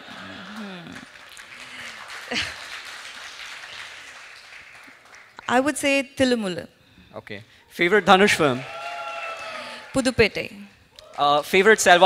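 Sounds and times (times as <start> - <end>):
audience applauding: 0.0 - 5.7, 8.2 - 10.3.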